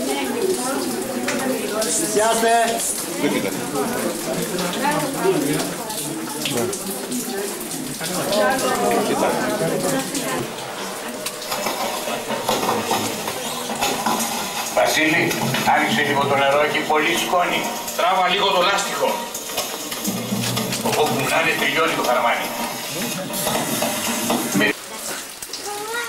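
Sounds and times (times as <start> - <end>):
indistinct talk of people: 0.0 - 26.0.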